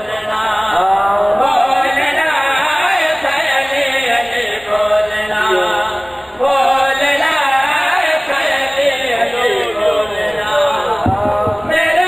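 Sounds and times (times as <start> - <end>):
men chanting into a microphone: 0.0 - 12.0.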